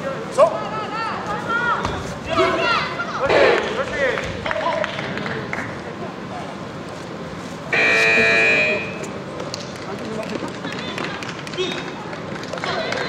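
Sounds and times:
scoreboard buzzer: 0:07.7 - 0:09.0.

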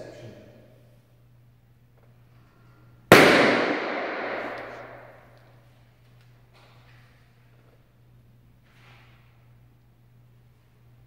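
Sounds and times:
balloon popping with reverberation: 0:03.1 - 0:05.2.

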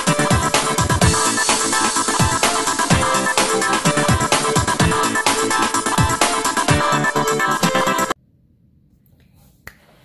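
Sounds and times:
electronic music: 0:00.0 - 0:08.2.

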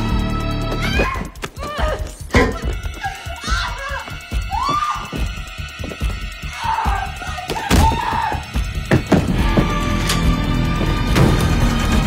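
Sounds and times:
tense horror film score: 0:00.0 - 0:12.0
woman screaming: 0:00.7 - 0:05.4, 0:06.4 - 0:08.6.

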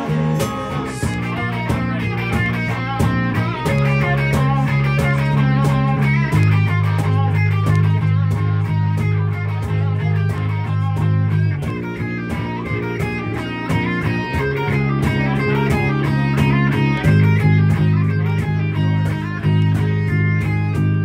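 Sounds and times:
bass guitar: 0:00.0 - 0:21.0
cajon steady beat: 0:00.0 - 0:21.0
electric guitar: 0:00.0 - 0:21.0
keyboard: 0:00.0 - 0:21.0.

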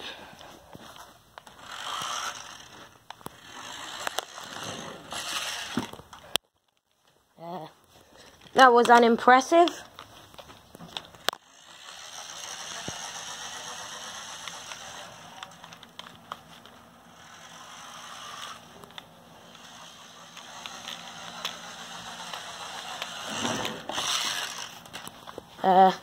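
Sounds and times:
toy truck motor whirring: 0:00.8 - 0:06.4, 0:08.4 - 0:25.9.

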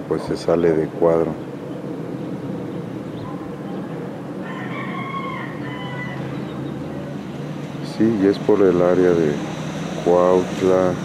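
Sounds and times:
steady low hum: 0:00.0 - 0:11.0
rooster crowing: 0:04.4 - 0:06.6.

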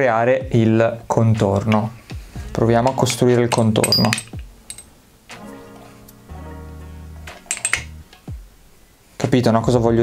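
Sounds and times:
background music with bass: 0:00.0 - 0:10.0
metal balls clicking together: 0:01.4 - 0:02.0, 0:02.9 - 0:04.9, 0:07.3 - 0:08.3.

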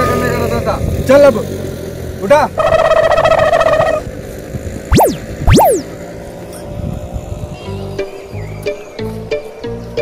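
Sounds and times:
swoosh sweeps: 0:04.9 - 0:05.9
buzzing fluttering tone: 0:04.9 - 0:06.0.

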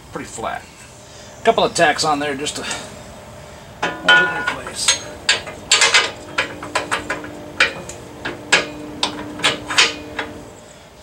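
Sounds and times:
metal parts knocking and clanking: 0:03.8 - 0:10.4.

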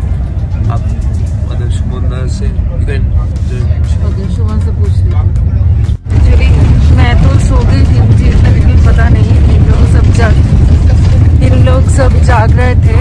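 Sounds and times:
bus rumble from inside cabin: 0:00.0 - 0:13.0
people talking: 0:00.4 - 0:13.0.

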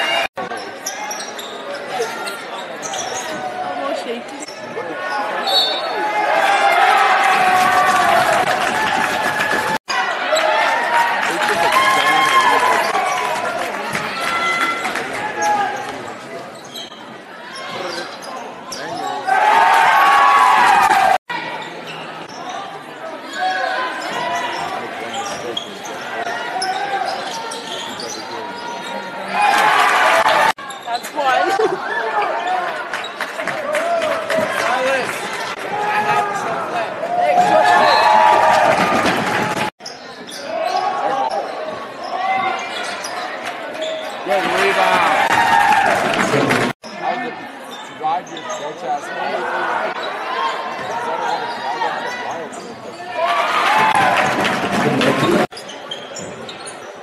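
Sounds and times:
spectators' voices: 0:00.0 - 0:57.0.

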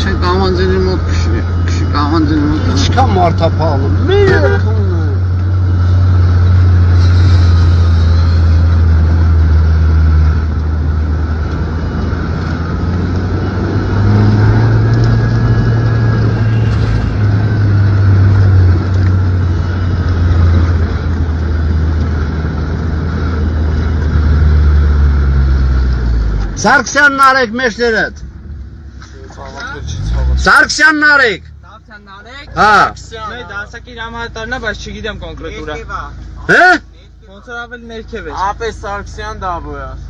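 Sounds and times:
vehicle engine running low: 0:00.0 - 0:40.0.

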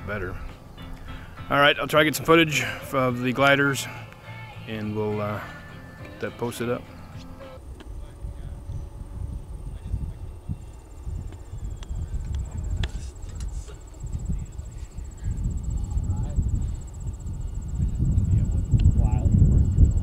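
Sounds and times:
wind rumbling on microphone: 0:07.4 - 0:20.0
high-pitched insect trill: 0:08.3 - 0:20.0.

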